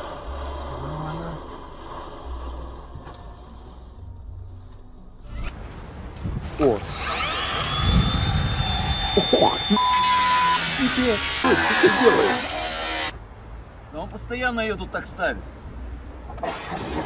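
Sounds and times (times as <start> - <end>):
motor whining: 6.6 - 13.1
short bleep: 9.6 - 10.7
voices: 10.7 - 12.5.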